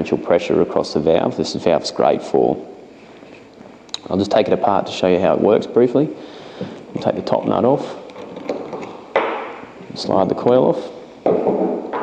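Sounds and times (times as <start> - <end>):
metal nut unscrewing clicks: 7.3 - 9.0.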